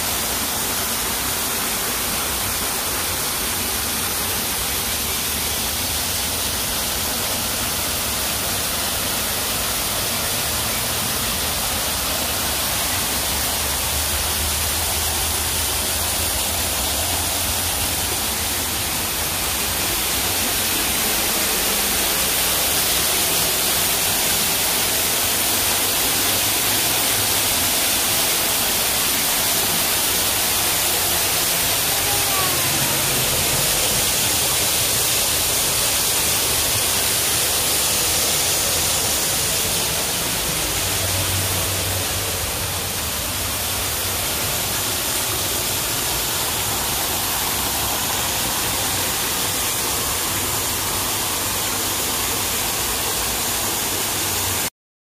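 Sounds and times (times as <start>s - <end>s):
waterfall splashing into pool: 0.0s - 54.7s.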